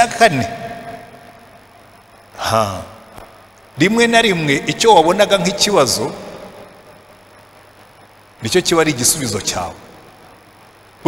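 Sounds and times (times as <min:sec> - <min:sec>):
man's amplified voice echoing: 0:00.0 - 0:01.1, 0:02.3 - 0:06.7, 0:08.4 - 0:10.0
sound system noise: 0:00.0 - 0:11.0.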